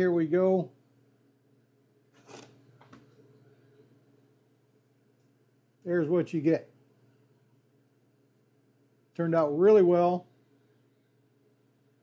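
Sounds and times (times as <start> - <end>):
faint low hum: 0.0 - 12.0
cutting board scraping: 2.2 - 2.6.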